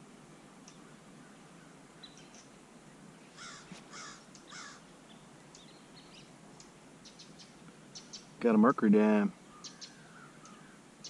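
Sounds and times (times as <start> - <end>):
small birds chirping: 0.6 - 11.0
crow cawing: 3.4 - 4.8, 9.5 - 10.8.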